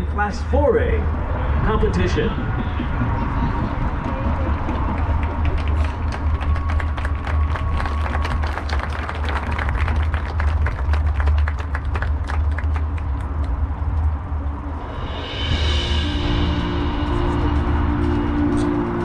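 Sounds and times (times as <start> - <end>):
low rumble: 0.0 - 19.0
applause from stands: 4.0 - 14.0.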